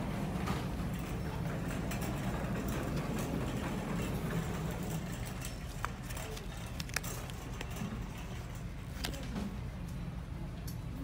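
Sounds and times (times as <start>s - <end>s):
store background rumble: 0.0s - 11.0s.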